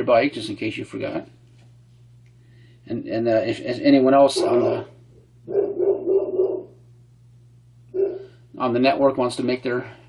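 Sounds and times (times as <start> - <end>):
dog making wavering calls: 4.3 - 4.8, 5.5 - 6.8, 7.9 - 8.4.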